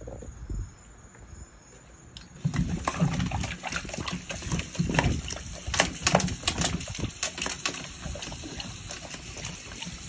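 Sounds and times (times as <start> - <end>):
dog lapping water: 2.4 - 10.0.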